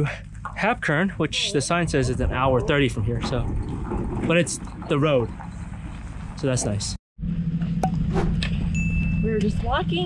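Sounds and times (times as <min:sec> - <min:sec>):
low outdoor rumble: 0:00.0 - 0:10.0
high chime tone: 0:08.8 - 0:09.7.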